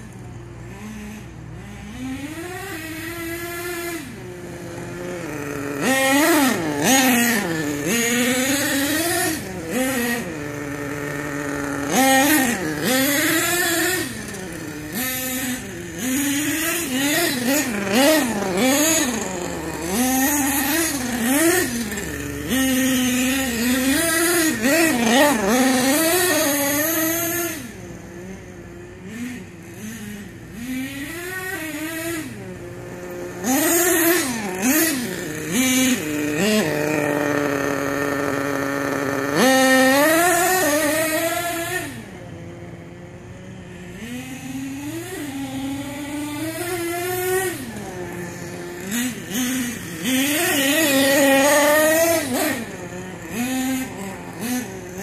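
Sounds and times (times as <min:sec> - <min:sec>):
rc truck engine revving: 0:00.0 - 0:55.0.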